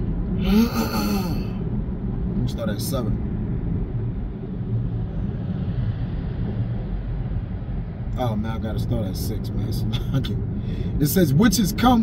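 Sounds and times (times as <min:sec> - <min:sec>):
road and engine rumble in car: 0:00.0 - 0:12.0.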